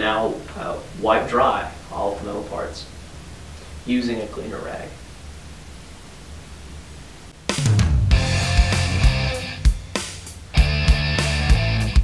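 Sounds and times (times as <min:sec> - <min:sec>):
faint low hum: 0:00.0 - 0:07.9
rock music with drums: 0:07.4 - 0:12.0.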